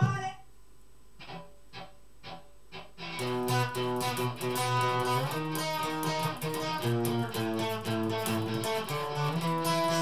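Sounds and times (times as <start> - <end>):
electric guitar notes and chords: 1.2 - 10.0.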